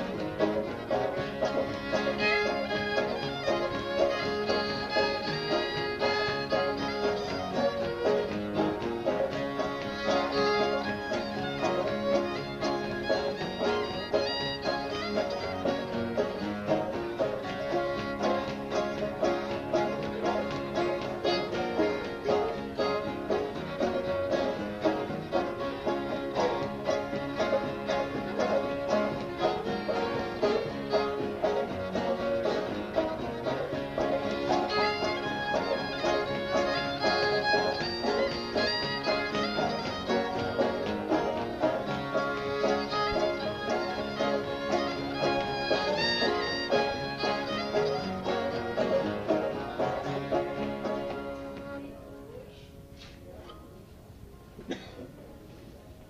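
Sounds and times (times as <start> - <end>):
fiddle and banjo tune: 0.0 - 56.0
guitar backing: 0.0 - 56.0.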